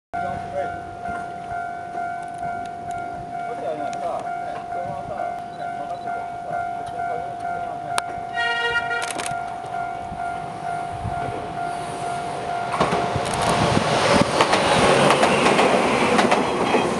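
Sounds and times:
steady tone: 0:00.2 - 0:14.0
train horn blast: 0:07.6 - 0:13.1
train wheels clattering over rails: 0:11.2 - 0:16.9.

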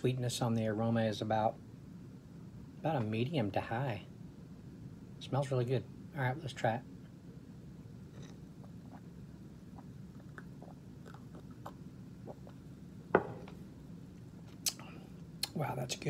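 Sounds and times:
low room hum: 0:00.0 - 0:16.0
mouth and swallowing clicks: 0:08.1 - 0:12.6
glass set down on desk: 0:13.1 - 0:13.6.

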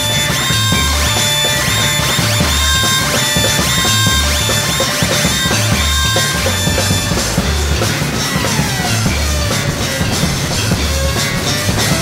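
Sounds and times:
drums: 0:00.0 - 0:12.0
pulsing bass line: 0:00.0 - 0:12.0
sliding synthesizer notes: 0:00.0 - 0:12.0.

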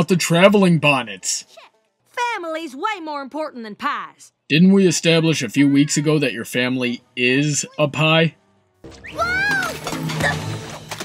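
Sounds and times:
background music: 0:00.0 - 0:11.0
clattering: 0:09.7 - 0:11.0.

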